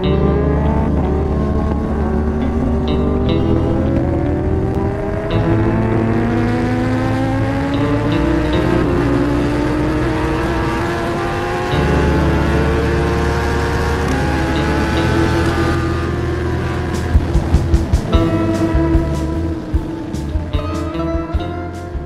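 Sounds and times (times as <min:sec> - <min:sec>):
heavy bass: 0:00.0 - 0:22.0
motorcycle engine at high speed: 0:00.0 - 0:22.0
music playing: 0:00.0 - 0:22.0.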